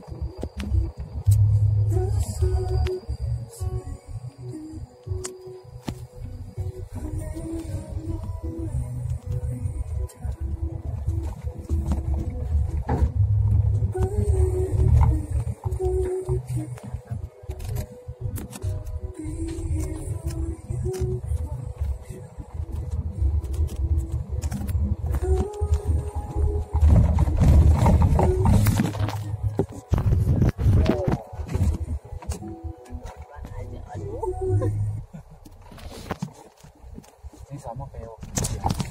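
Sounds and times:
vehicle engine and road rumble: 0:00.0 - 0:38.9.

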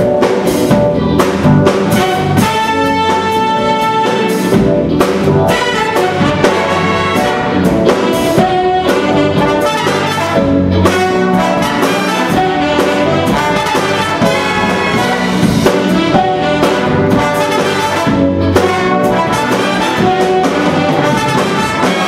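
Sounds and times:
big band playing funk: 0:00.0 - 0:22.0.

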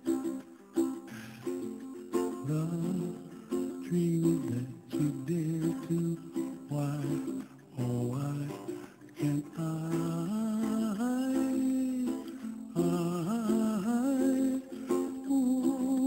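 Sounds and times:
plucked strings: 0:00.0 - 0:16.0
person humming a melody: 0:02.4 - 0:16.0.

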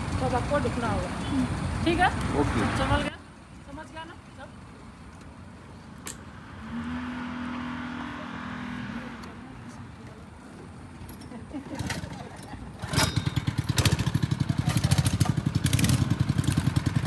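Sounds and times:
go-kart engine drone: 0:06.5 - 0:09.9, 0:11.6 - 0:17.0.

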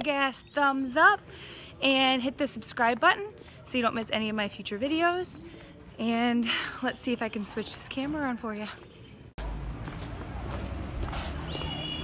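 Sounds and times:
outdoor street ambience: 0:00.0 - 0:12.0
footsteps: 0:02.2 - 0:12.0.

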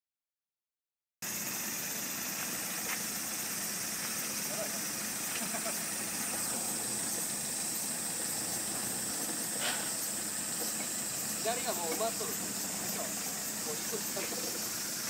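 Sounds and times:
diesel engine running: 0:01.2 - 0:15.0
high-pitched hiss: 0:01.2 - 0:15.0.

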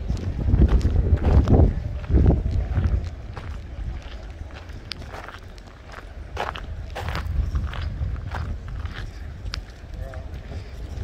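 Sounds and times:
footsteps on stone paving: 0:00.0 - 0:11.0
steady low rumble: 0:00.0 - 0:11.0.

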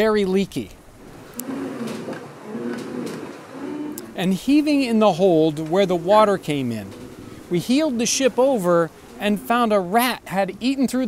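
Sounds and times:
ship timbers creaking: 0:00.0 - 0:10.8.

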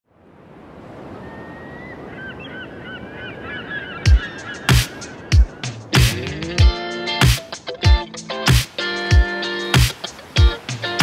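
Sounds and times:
honking bird-like calls: 0:01.9 - 0:05.8
rushing surf-like noise: 0:04.6 - 0:11.0.

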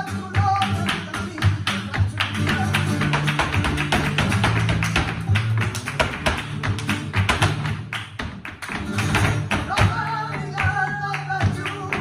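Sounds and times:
flamenco guitar: 0:00.0 - 0:12.0
hand-clapping: 0:00.0 - 0:12.0
shoes striking wooden stage: 0:00.0 - 0:12.0.

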